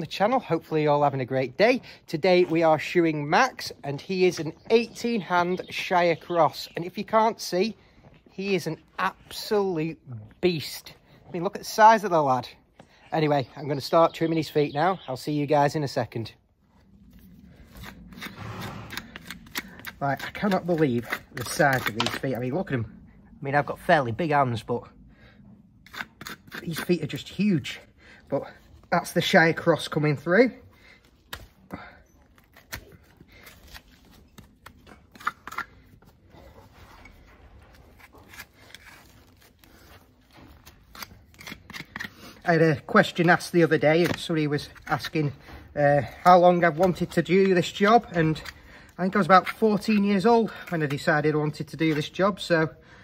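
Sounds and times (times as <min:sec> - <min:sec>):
hoof knife scraping hoof: 0:16.9 - 0:22.9, 0:25.8 - 0:52.5.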